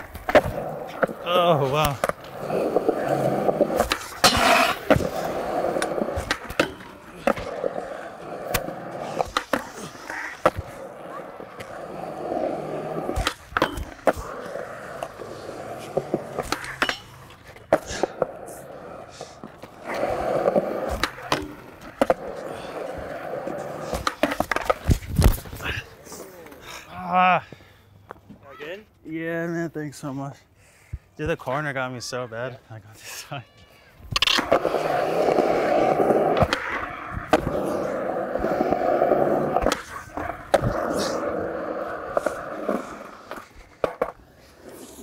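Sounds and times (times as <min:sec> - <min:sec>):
skater falling on concrete: 0:00.0 - 0:27.2, 0:33.6 - 0:45.0
skateboard wheels rolling on concrete: 0:00.0 - 0:30.3, 0:31.1 - 0:45.0
skateboard clacks: 0:01.8 - 0:25.6, 0:34.1 - 0:45.0.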